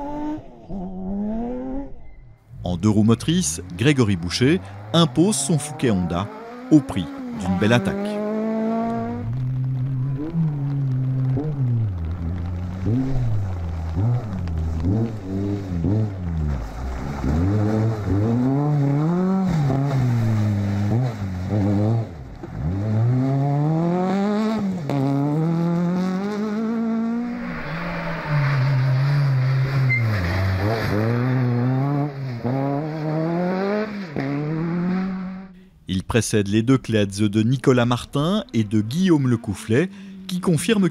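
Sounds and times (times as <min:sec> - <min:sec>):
rally car engines revving: 0:00.0 - 0:35.7.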